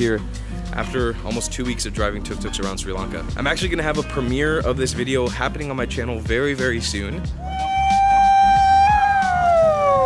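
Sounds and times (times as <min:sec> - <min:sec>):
man yelling: 0:07.4 - 0:10.0.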